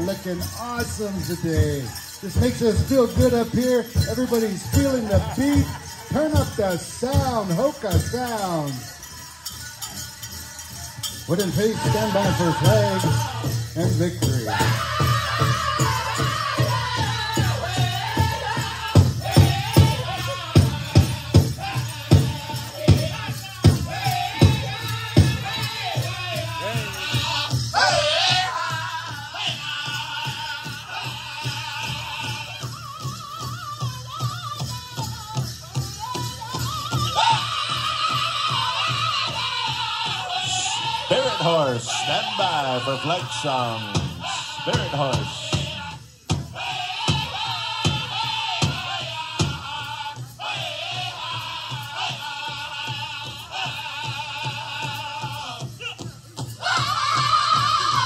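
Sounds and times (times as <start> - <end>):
group singing: 9.0 - 34.6, 35.8 - 58.0.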